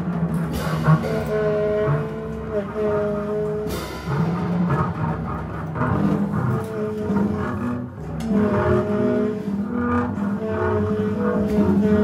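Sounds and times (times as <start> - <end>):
drum and cymbal strokes: 0.0 - 8.2
bowed double bass: 0.0 - 12.0.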